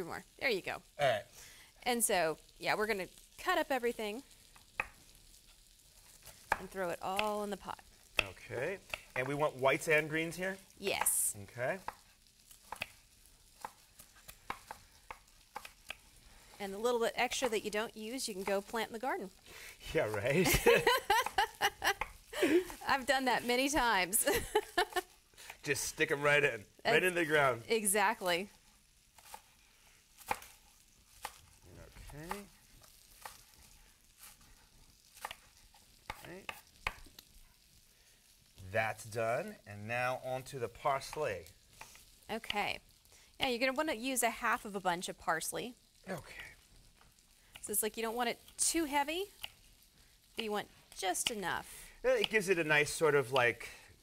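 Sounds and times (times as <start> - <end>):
faint frying sizzle: 0.0 - 54.0
person humming: 22.4 - 22.7.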